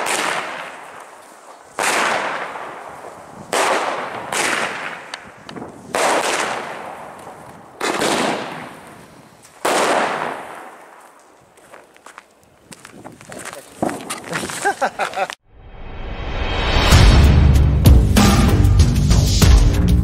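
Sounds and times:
fireworks bursting: 0.0 - 11.4.

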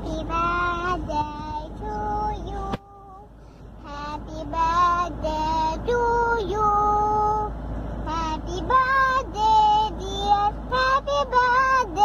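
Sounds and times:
child singing: 0.0 - 3.2, 3.8 - 7.5, 8.1 - 12.0.

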